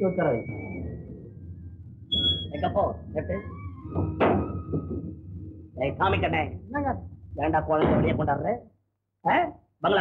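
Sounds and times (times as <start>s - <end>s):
faint background film music: 0.0s - 10.0s.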